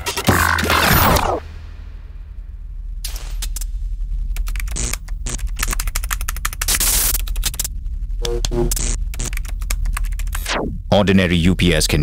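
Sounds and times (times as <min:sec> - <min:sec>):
steady low hum: 0:01.3 - 0:12.0
rapid irregular clicking: 0:04.3 - 0:07.7, 0:08.4 - 0:10.5
electronic music: 0:08.2 - 0:09.3.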